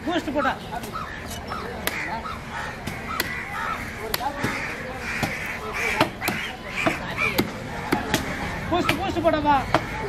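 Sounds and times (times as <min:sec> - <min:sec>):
market voices: 0:00.0 - 0:10.0
crows cawing: 0:00.3 - 0:10.0.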